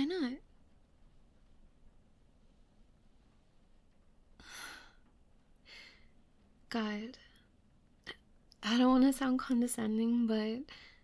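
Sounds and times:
woman sighing: 0:04.4 - 0:05.0.

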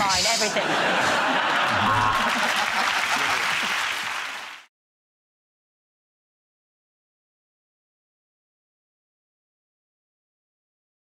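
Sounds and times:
studio audience applauding: 0:01.0 - 0:04.7.

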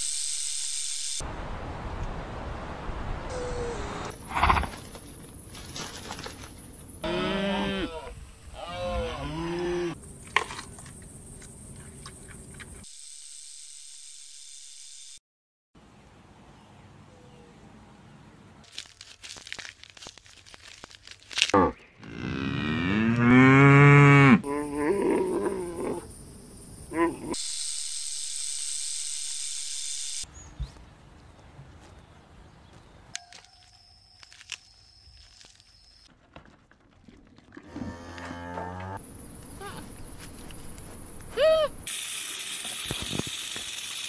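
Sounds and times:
cows mooing: 0:07.0 - 0:10.0, 0:21.6 - 0:26.0, 0:37.7 - 0:39.0
steady hiss: 0:39.2 - 0:44.0.

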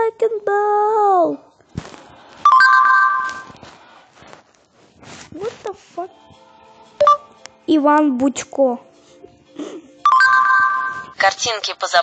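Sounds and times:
tablet chime: 0:02.5 - 0:03.6, 0:07.0 - 0:07.3, 0:10.0 - 0:11.2.

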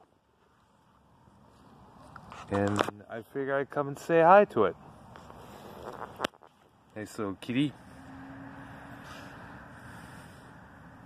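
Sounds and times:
outdoor background rumble: 0:00.0 - 0:11.0.

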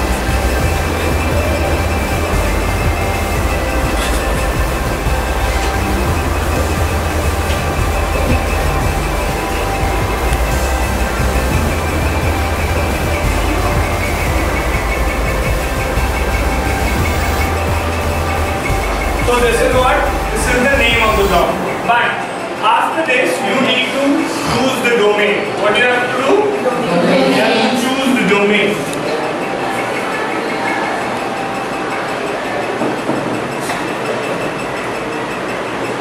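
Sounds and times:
loud low rumble: 0:00.0 - 0:21.9.

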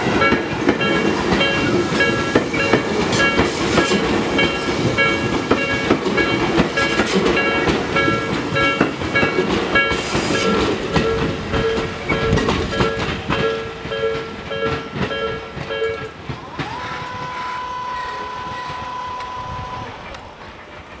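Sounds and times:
crossing barrier whine: 0:00.0 - 0:21.0
electric train rumbling past: 0:00.0 - 0:21.0
level-crossing bell chiming: 0:04.3 - 0:16.1.

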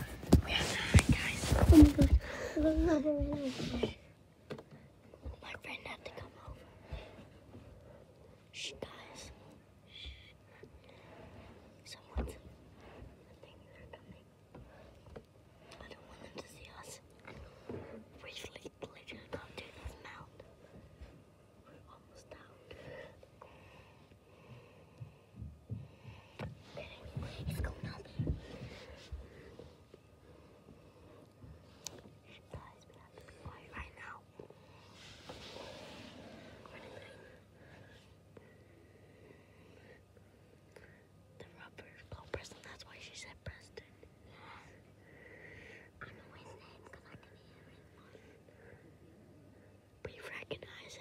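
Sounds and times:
person whispering: 0:00.3 - 0:04.0, 0:05.3 - 0:06.6, 0:08.5 - 0:10.4, 0:11.8 - 0:12.4, 0:15.8 - 0:17.1, 0:18.2 - 0:20.4, 0:21.6 - 0:22.7, 0:26.7 - 0:28.4, 0:32.3 - 0:34.4, 0:41.4 - 0:44.7, 0:46.0 - 0:48.3, 0:50.0 - 0:51.0.

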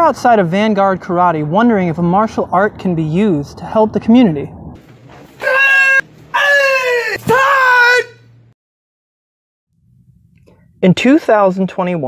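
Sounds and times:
person yelling high-pitched: 0:05.4 - 0:08.2.

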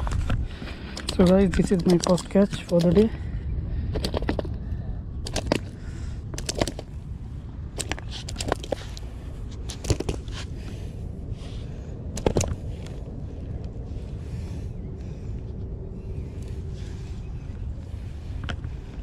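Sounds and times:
low steady rumble: 0:00.0 - 0:19.0.

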